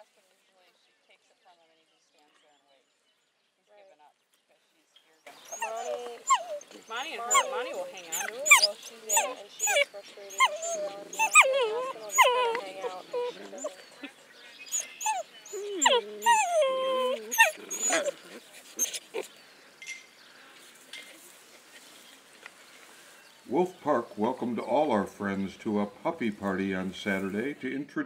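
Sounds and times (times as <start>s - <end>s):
wolf pups whining: 5.3s - 19.4s.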